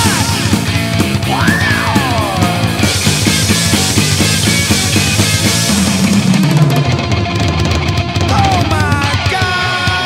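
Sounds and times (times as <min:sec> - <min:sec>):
electronic drum kit played fast: 0:00.0 - 0:10.0
hard rock backing track: 0:00.0 - 0:10.0.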